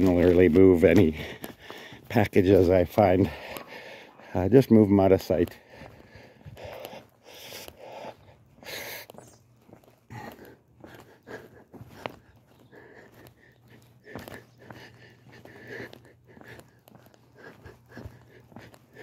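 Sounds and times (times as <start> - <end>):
breathing close to microphone: 1.1 - 2.1, 3.2 - 4.4, 5.5 - 9.4, 10.1 - 19.0.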